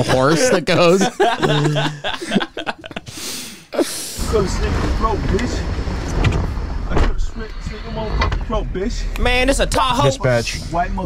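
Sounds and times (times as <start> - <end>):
muffled voices: 4.2 - 11.0
vehicle engine rumble: 4.2 - 11.0.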